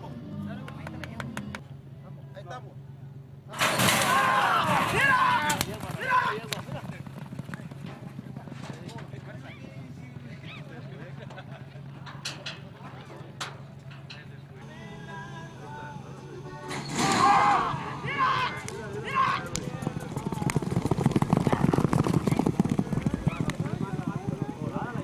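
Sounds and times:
loud cries: 0:03.5 - 0:06.5, 0:16.6 - 0:20.5
galloping hoofbeats on dirt: 0:04.5 - 0:11.8, 0:17.4 - 0:25.0.

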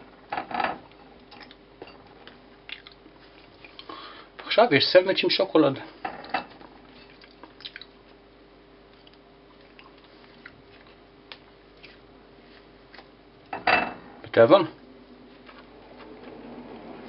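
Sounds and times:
faint steady hum: 0:00.0 - 0:17.0
soft squishing of bread: 0:01.2 - 0:04.1, 0:06.8 - 0:13.4.

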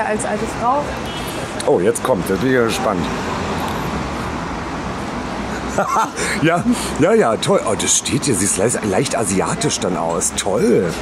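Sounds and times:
road traffic passing: 0:00.0 - 0:11.0.

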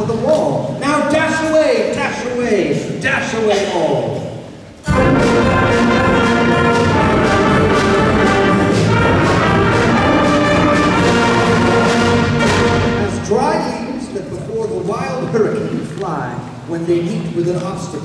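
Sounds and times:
concert band playing: 0:04.8 - 0:14.0.

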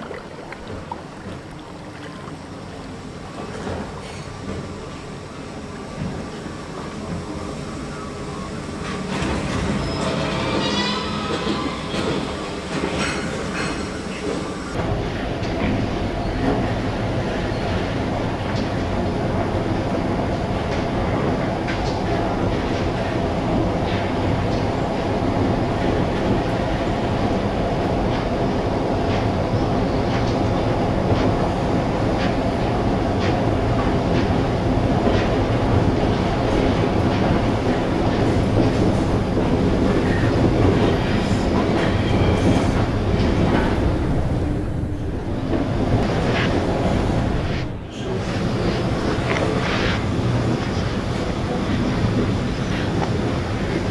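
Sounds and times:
train running noise: 0:00.0 - 0:53.9.

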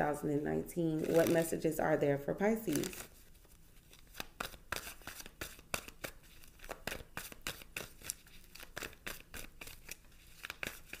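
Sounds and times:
cards being shuffled: 0:01.0 - 0:01.5, 0:02.7 - 0:11.0.

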